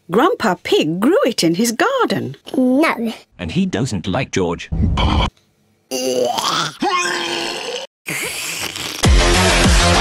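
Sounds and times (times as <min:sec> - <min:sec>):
cartoon pig disgust noise: 0:05.9 - 0:09.1.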